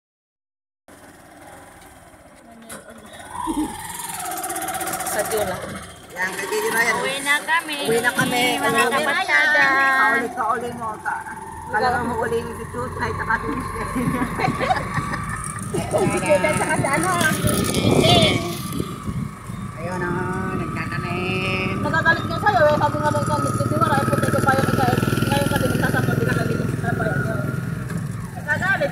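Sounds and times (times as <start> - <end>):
vehicle engine rumble: 0.9 - 28.9
people talking: 2.4 - 3.8, 5.0 - 19.0, 19.8 - 27.6, 28.4 - 28.9
wind noise: 12.9 - 23.0.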